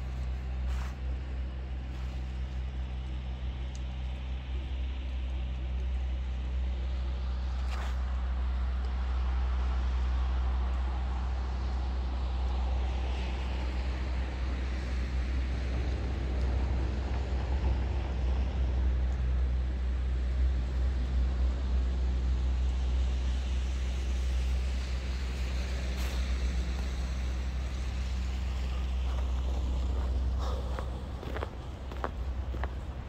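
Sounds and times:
deep low rumble: 0.0s - 33.0s
cars passing on street: 23.7s - 33.0s.

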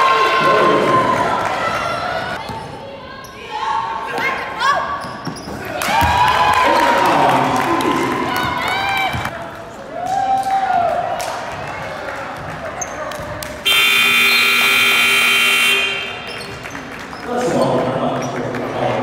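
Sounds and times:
scoreboard horn blare: 13.7s - 16.3s.

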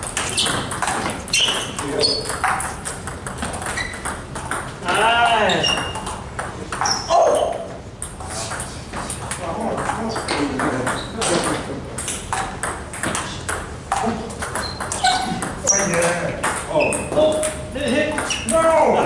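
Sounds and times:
table tennis balls clicking: 0.0s - 18.6s.

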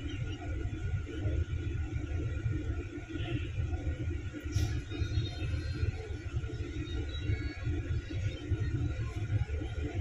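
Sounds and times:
bus idling rumble: 0.0s - 10.0s.

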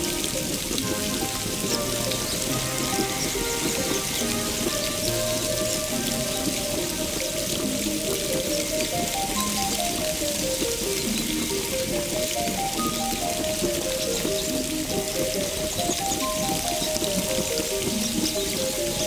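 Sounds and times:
ambient relaxation music: 0.0s - 19.0s
rain-like hiss: 0.0s - 19.0s.

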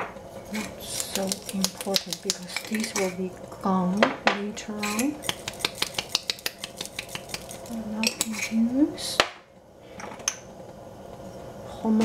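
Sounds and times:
herbs shaken into steel pot: 0.6s - 3.2s, 4.9s - 7.8s.

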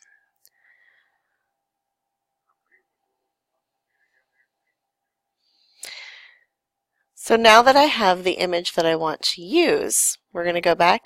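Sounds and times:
faint breath: 0.0s - 1.6s, 3.7s - 6.6s.

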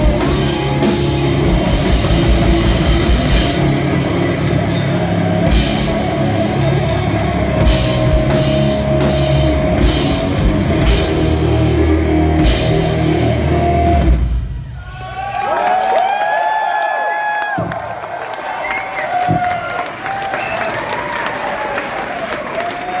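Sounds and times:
crowd cheering and clapping: 0.0s - 11.0s, 14.6s - 23.0s
rock band playing loud: 0.0s - 14.7s
crowd shouts and whistles: 14.6s - 23.0s.

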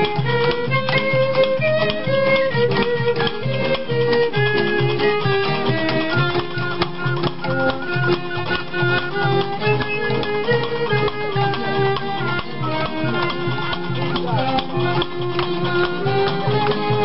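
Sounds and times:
fiddle melody: 0.0s - 17.0s
strummed guitar: 0.0s - 17.0s.

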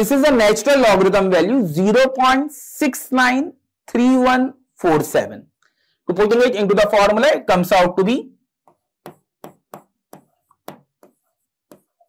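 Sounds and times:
stylus tapping on glass: 8.7s - 12.0s.

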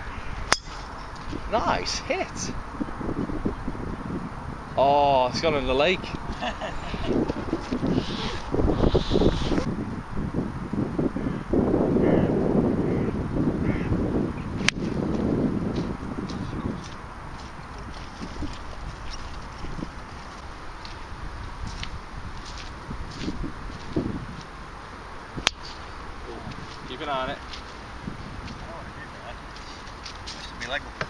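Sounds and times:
wind on microphone: 0.0s - 31.0s
golf club striking ball: 0.5s - 1.2s.

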